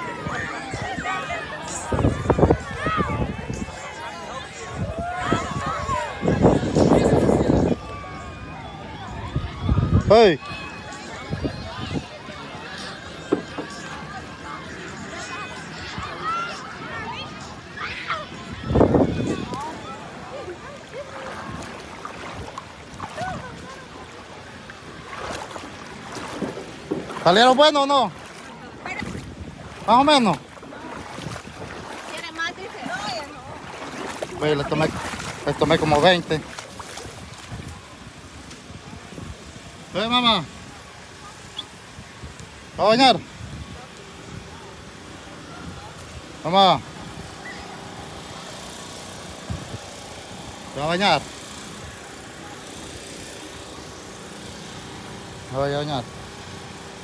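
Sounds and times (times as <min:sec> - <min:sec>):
wind on microphone: 0:01.8 - 0:08.2, 0:09.1 - 0:10.2, 0:18.4 - 0:19.9, 0:28.8 - 0:32.2, 0:32.8 - 0:39.7
water lapping in shallows: 0:16.2 - 0:44.4.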